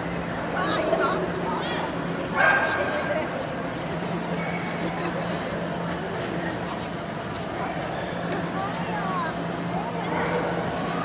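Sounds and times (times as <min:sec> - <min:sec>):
dog high bark: 0:02.4 - 0:03.0.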